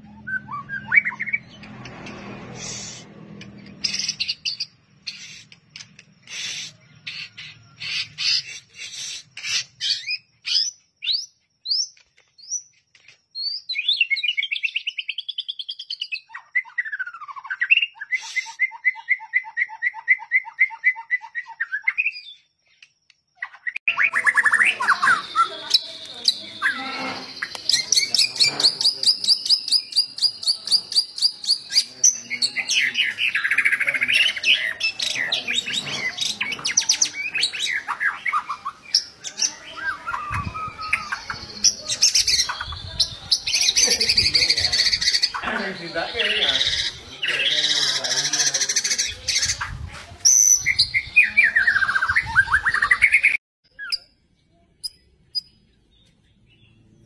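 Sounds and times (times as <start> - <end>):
songbird singing whistled trills: 0.0 - 1.7, 3.7 - 48.0.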